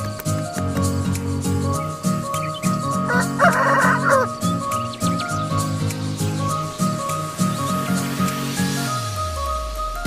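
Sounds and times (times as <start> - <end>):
background music with a beat: 0.0 - 10.0
rooster crowing: 3.0 - 4.5.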